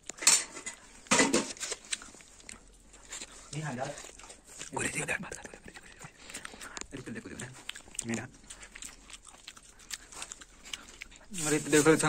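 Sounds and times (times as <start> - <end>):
steel pots and plates clattering: 0.2 - 1.6.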